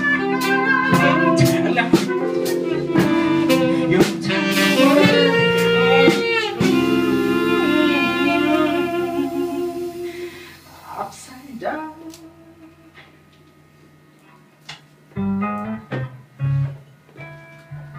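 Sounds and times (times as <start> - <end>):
electric guitar: 0.0 - 11.0
keyboard chords: 0.0 - 11.1, 15.1 - 17.9
drum kit beat: 0.0 - 11.2
saxophone line: 0.0 - 13.0.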